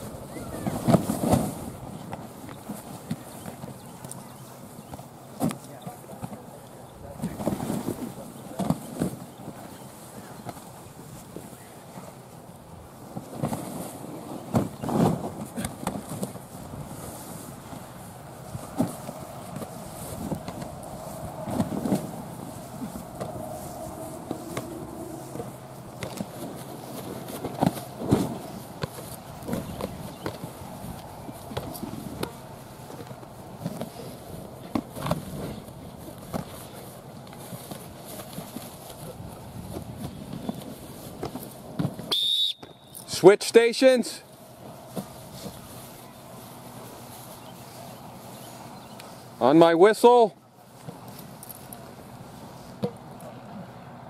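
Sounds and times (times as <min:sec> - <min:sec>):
faint distant voices: 0:00.0 - 0:41.4, 0:43.9 - 0:54.0
short high whistle blast: 0:42.1 - 0:43.0.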